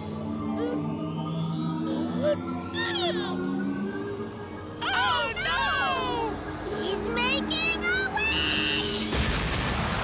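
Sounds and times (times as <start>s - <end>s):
cartoon music with low notes: 0.0s - 4.0s
cartoon voice: 1.9s - 3.4s.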